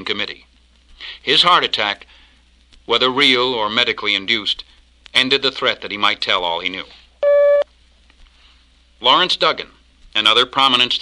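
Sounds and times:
short electronic beep: 7.2 - 7.6.

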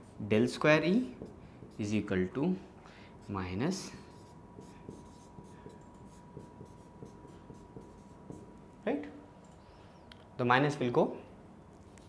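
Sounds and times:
marker pen scratching on whiteboard: 0.0 - 2.1, 3.2 - 8.6.

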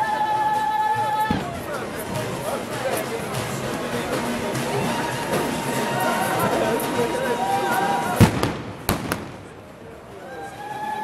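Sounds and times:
sharp bangs: 8.2 - 9.7.

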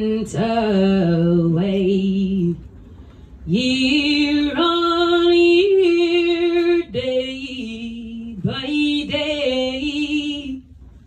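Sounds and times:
woman singing unaccompanied: 0.0 - 2.6, 3.5 - 10.7.

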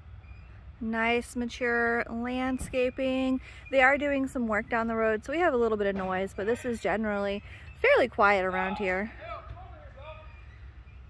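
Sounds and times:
road-work machinery rumble: 0.0 - 11.0.

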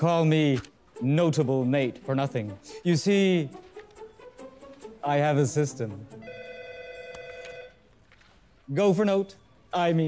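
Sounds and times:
telephone two-tone ring: 6.2 - 7.8.

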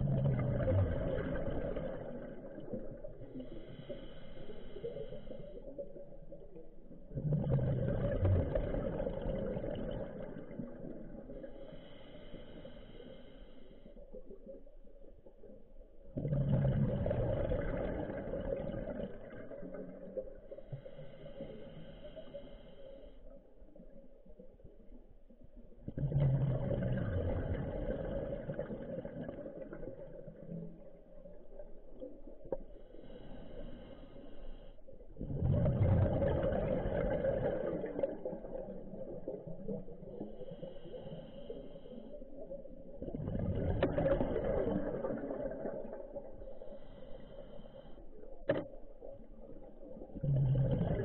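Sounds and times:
diver exhaling bubbles: 0.0 - 5.4, 7.1 - 13.2, 16.1 - 22.6, 25.8 - 32.1, 35.1 - 41.8, 42.4 - 47.7, 48.5 - 51.0.

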